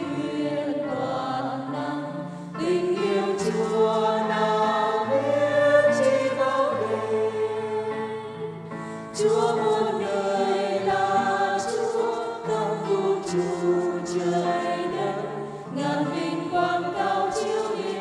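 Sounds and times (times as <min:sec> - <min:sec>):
choir singing a slow hymn: 0:00.0 - 0:18.0.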